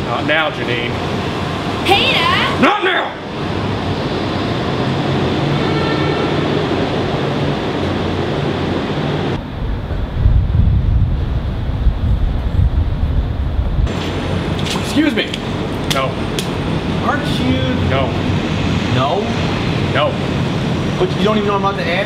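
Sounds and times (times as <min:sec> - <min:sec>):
traffic hum: 0:00.0 - 0:22.0
deep uneven low rumble: 0:09.3 - 0:14.6.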